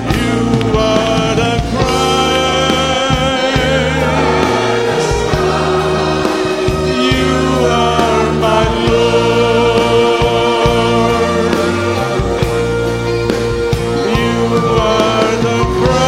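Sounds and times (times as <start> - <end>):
band accompaniment: 0.0 - 16.0
choir singing: 0.0 - 16.0.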